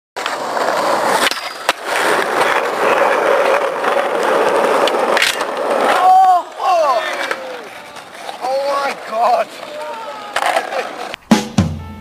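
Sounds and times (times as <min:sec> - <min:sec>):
skateboard clacks: 0:00.2 - 0:11.3
skateboard wheels rolling on asphalt: 0:00.2 - 0:11.3.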